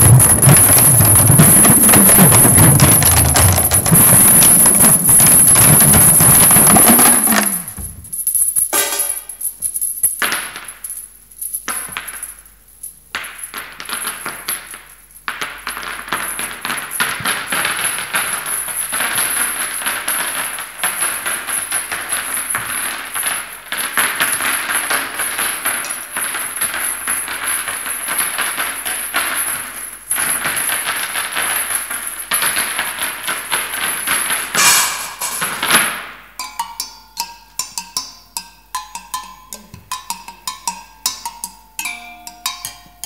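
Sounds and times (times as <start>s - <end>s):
metallic percussion clattering: 0.0s - 9.8s, 24.2s - 30.8s, 34.0s - 43.0s.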